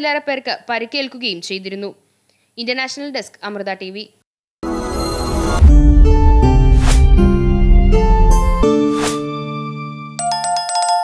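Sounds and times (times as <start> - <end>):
short whoosh: 5.3 - 9.2
bell-like notification chime: 10.2 - 11.0.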